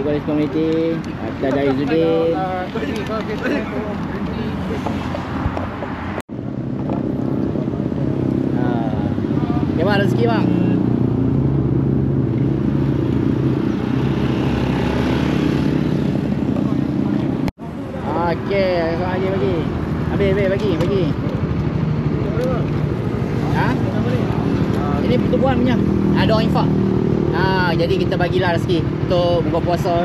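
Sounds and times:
voices: 0.0 - 5.3, 16.4 - 30.0.

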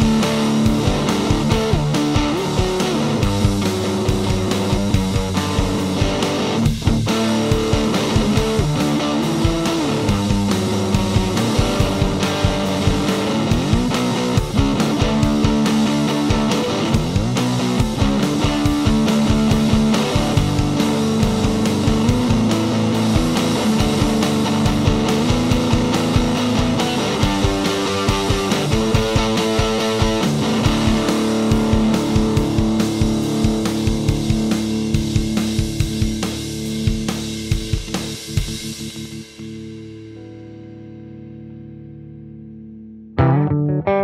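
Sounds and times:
drums: 0.0 - 42.5
electric guitar through amplifier: 0.0 - 44.0.

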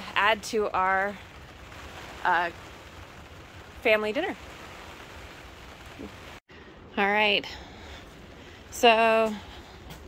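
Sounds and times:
light rain on plastic cover: 0.0 - 6.4.

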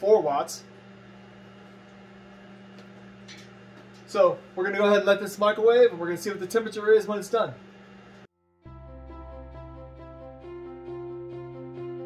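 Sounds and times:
microwave oven humming: 0.0 - 8.3.

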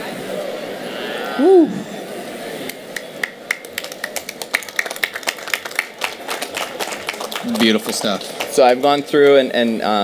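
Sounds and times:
audience clapping: 2.7 - 9.4.

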